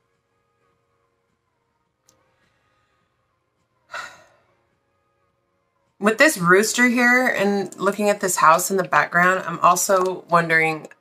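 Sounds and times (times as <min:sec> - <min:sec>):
woman sighing: 0:03.9 - 0:04.5.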